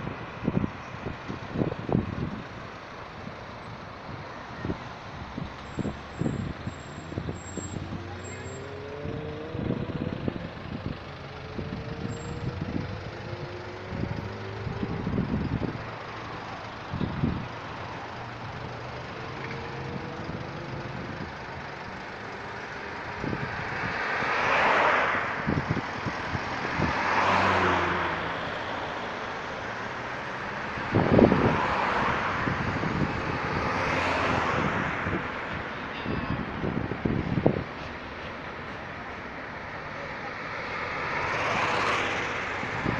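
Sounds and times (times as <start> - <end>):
cars passing close by: 0.0 - 42.9
vehicles pulling away: 0.0 - 42.9.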